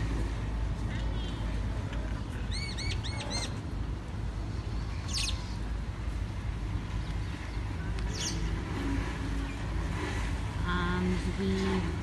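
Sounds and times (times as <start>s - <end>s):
low outdoor rumble: 0.0s - 12.0s
birds chirping: 1.0s - 3.6s, 4.4s - 5.8s, 6.6s - 11.8s.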